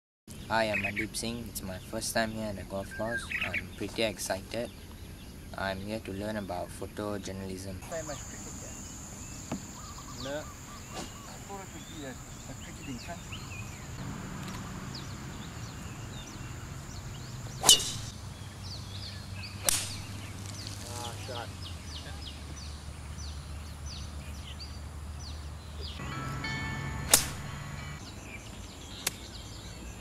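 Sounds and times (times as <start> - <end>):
faint chirping: 0.3 - 30.0
golf club striking ball: 17.6 - 18.2, 19.6 - 20.3, 26.8 - 27.8.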